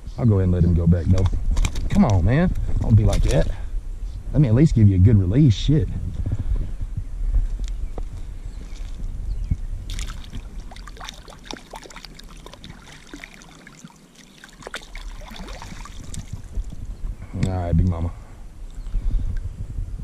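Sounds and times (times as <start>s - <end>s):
small water splashes and drips: 9.9s - 16.8s
water sloshing around a hand: 9.9s - 16.9s.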